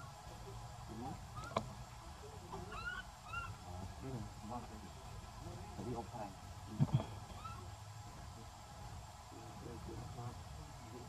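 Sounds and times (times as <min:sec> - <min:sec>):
high animal calls: 0:01.3 - 0:01.7, 0:02.5 - 0:04.0, 0:06.7 - 0:07.8.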